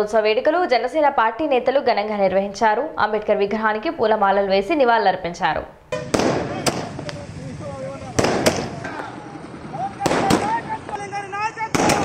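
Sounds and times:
firecrackers banging: 5.9s - 12.0s
people shouting: 7.7s - 12.0s.

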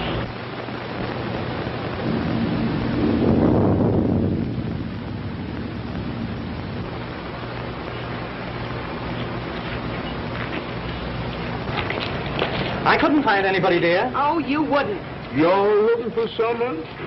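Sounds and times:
film soundtrack hiss: 0.0s - 17.0s
low rumble: 1.2s - 9.5s.

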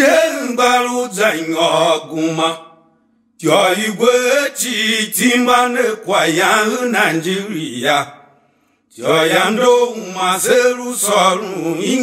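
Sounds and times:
person chanting a song: 0.0s - 2.8s, 3.4s - 8.2s, 8.9s - 12.0s.

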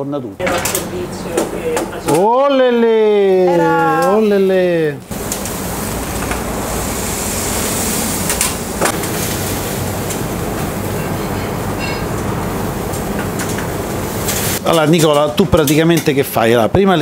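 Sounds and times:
steaks sizzling on a grill: 5.1s - 15.7s
metal tongs clicking on grill: 14.3s - 16.7s.

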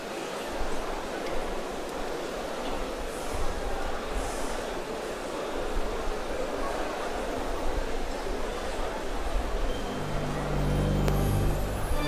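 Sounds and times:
electronic organ chord: 9.7s - 12.0s.

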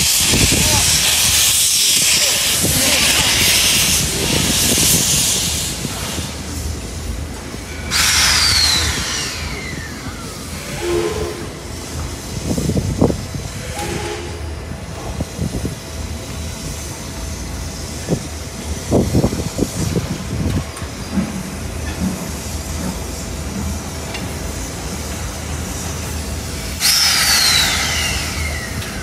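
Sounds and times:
steam locomotive hissing steam: 0.0s - 29.0s.

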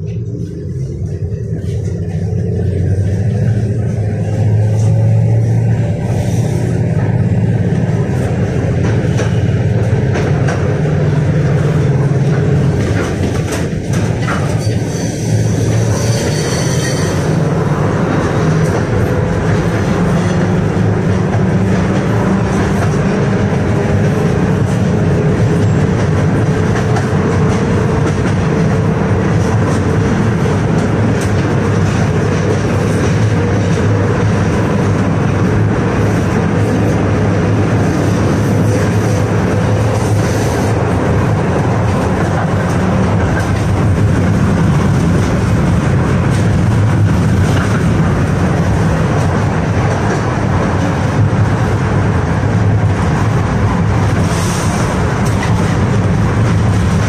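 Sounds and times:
passing tram: 0.0s - 57.0s
tram running on rails: 0.0s - 57.0s.

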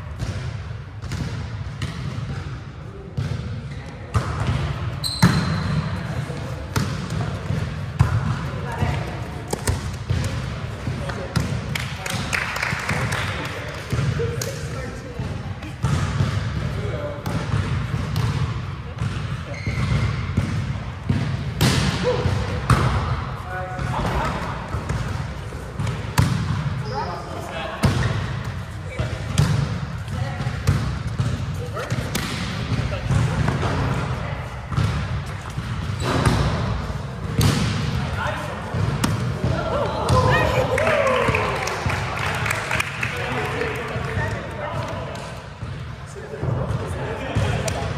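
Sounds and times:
volleyball being struck: 17.2s - 23.2s, 34.7s - 38.0s.

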